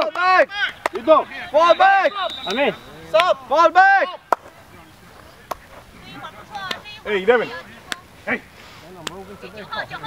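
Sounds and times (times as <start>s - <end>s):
players calling out: 0.0s - 10.0s.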